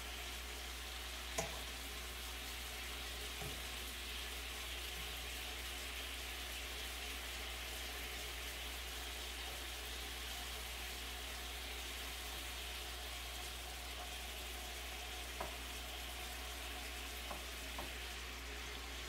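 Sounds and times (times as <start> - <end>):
meat sizzling in a frying pan: 0.0 - 19.0.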